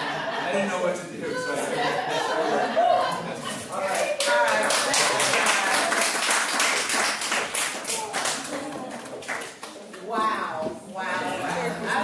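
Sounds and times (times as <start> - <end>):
laughter: 0.0 - 3.8
audience clapping: 3.8 - 10.0.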